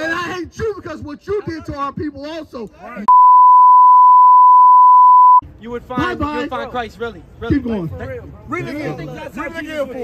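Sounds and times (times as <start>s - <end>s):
censor bleep tone: 3.1s - 5.4s.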